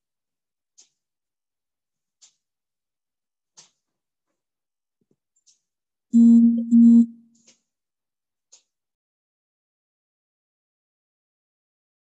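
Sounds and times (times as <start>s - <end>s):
low electronic tone: 6.2s - 7.2s.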